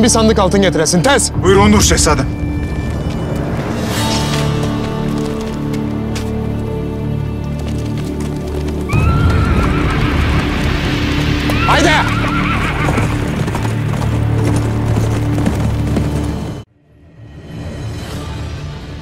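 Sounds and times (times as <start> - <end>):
horse hoofbeats on dirt: 4.8 - 16.6
loud dramatic music: 8.8 - 16.3
horse neighing: 11.5 - 14.2.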